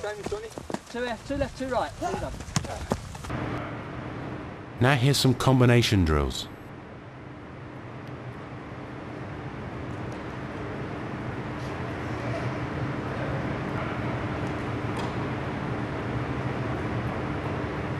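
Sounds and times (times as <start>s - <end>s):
low constant hum: 0.0s - 17.9s.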